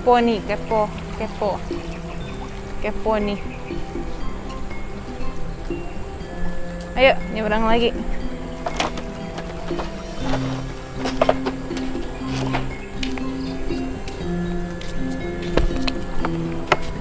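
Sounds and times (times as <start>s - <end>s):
sustained low music notes: 0.0s - 17.0s.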